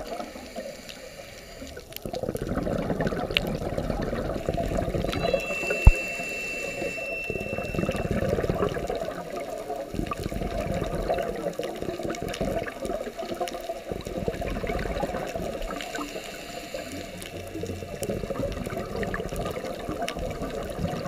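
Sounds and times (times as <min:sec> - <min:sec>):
underwater bubbles gurgling: 0:00.0 - 0:21.0
faint high tone: 0:05.0 - 0:09.1.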